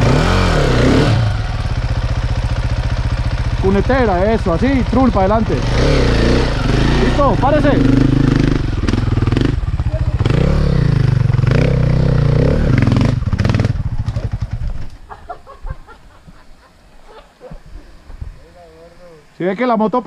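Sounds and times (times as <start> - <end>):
dirt bike engine revving: 0.0 - 14.8.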